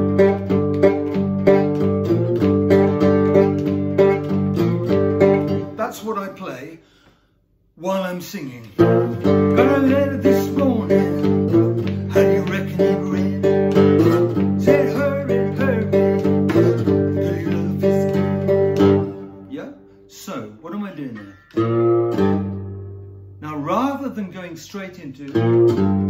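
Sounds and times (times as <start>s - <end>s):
slide guitar blues rhythm: 0.0s - 7.1s, 7.8s - 26.0s
man singing: 8.7s - 13.6s, 14.6s - 18.6s.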